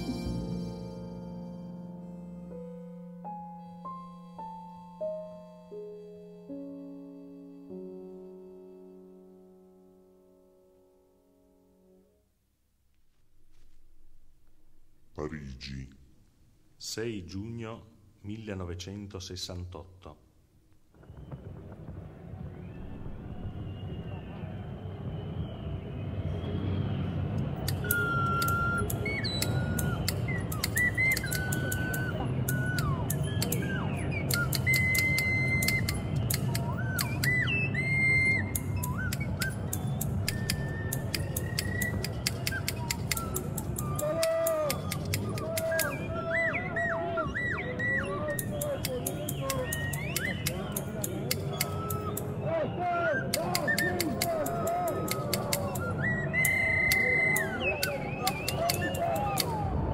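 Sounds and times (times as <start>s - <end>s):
plastic whistle sliding notes: 27.0s - 59.8s
scissors snipping: 27.6s - 37.4s, 38.6s - 46.0s, 48.4s - 52.3s, 57.4s - 59.6s.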